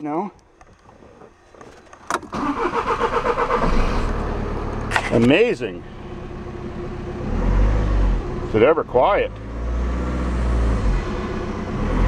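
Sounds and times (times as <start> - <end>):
diesel engine idling: 2.3 - 11.9.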